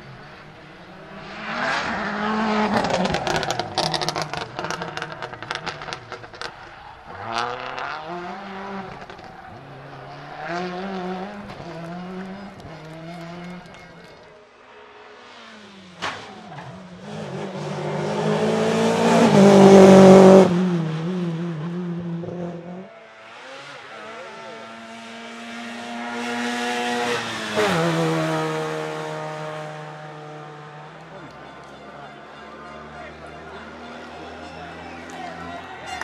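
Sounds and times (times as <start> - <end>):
rally car engine passing: 0.0 - 36.0.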